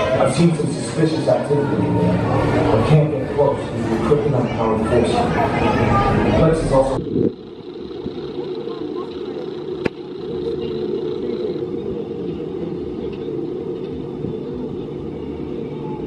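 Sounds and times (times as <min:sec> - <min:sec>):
roller coaster rumble: 0:00.0 - 0:16.0.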